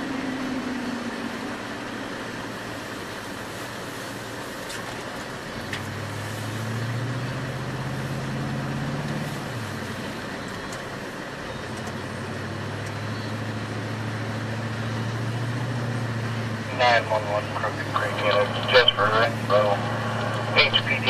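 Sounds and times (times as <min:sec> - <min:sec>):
vehicle engine and road noise: 0:00.0 - 0:21.0.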